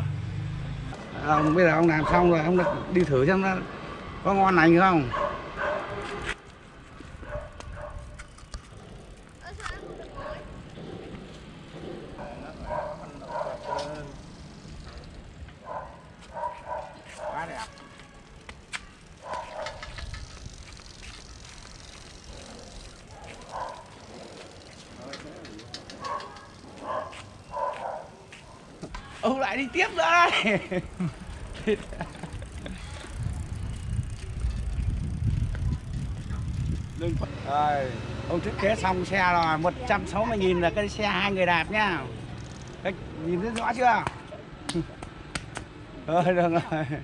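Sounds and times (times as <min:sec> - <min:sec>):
bicycle rolling on concrete: 0:00.0 - 0:44.5, 0:45.2 - 0:47.0
distant voices: 0:08.2 - 0:45.9.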